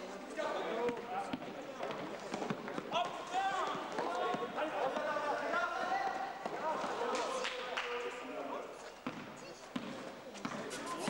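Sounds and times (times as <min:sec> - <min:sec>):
players' voices and calls: 0:00.0 - 0:11.0
basketball bouncing on floor: 0:09.0 - 0:10.6.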